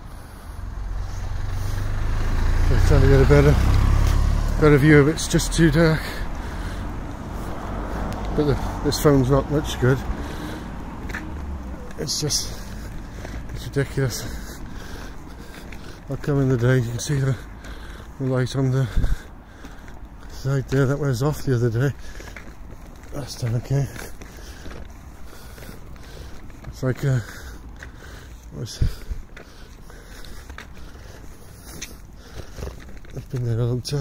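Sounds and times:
low outdoor background rumble: 0:00.0 - 0:34.0.

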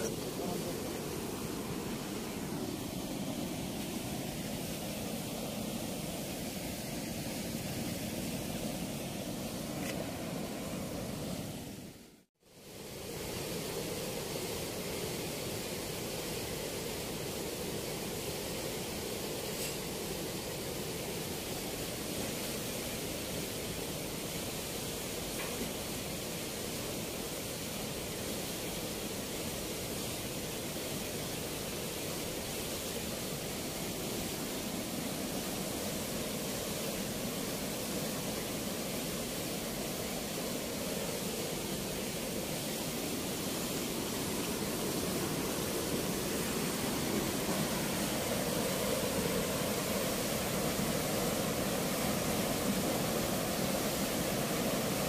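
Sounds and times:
turbulent water rushing from sluice: 0:00.0 - 0:11.2, 0:12.5 - 0:55.0.

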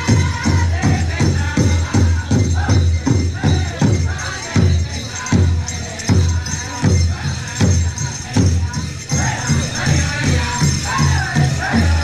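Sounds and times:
big drum steady beat: 0:00.0 - 0:12.0
high jingling: 0:00.0 - 0:12.0
voices singing together: 0:00.0 - 0:12.0.

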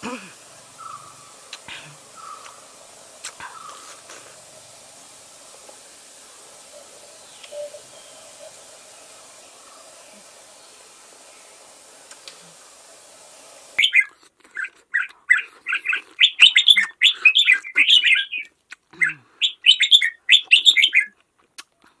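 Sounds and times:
steady hiss: 0:00.0 - 0:14.0
bird chirps: 0:00.8 - 0:04.4, 0:05.3 - 0:11.6, 0:13.8 - 0:14.1, 0:15.0 - 0:21.1.

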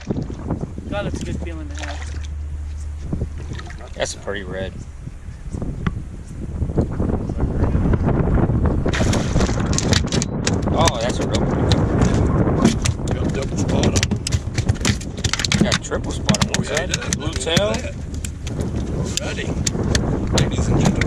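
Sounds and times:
fish flopping on boat deck: 0:00.0 - 0:06.9, 0:08.7 - 0:21.0
wind buffeting microphone: 0:00.0 - 0:21.0.

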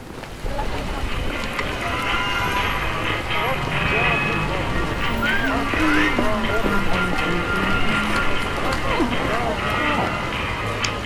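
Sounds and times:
din of many voices: 0:00.2 - 0:11.0
steady noise: 0:00.4 - 0:11.0.

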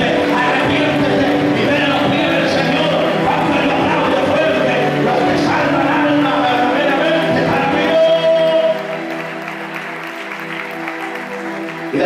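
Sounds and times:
person's voice: 0:00.0 - 0:08.9
electronic keyboard chord: 0:00.0 - 0:12.0.

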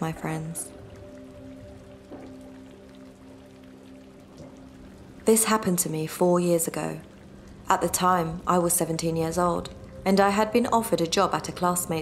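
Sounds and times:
quiet background music: 0:00.0 - 0:12.0
rain: 0:00.0 - 0:12.0.

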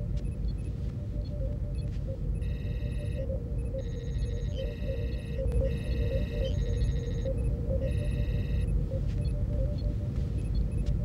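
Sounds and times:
high electronic beeps: 0:00.2 - 0:09.9.

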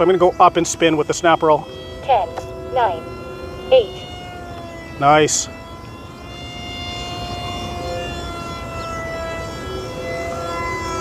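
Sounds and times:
electric motors and propellers whining: 0:00.0 - 0:11.0.

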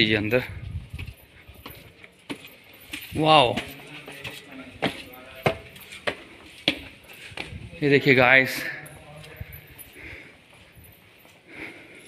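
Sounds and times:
footsteps on stone steps: 0:00.0 - 0:12.0.

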